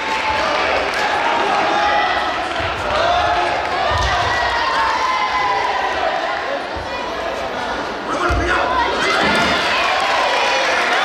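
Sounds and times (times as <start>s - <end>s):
raised voices of coaches and spectators: 0.0s - 11.0s.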